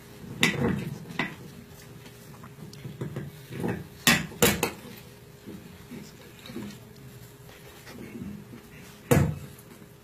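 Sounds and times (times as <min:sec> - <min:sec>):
faint room murmur: 0:00.0 - 0:10.0.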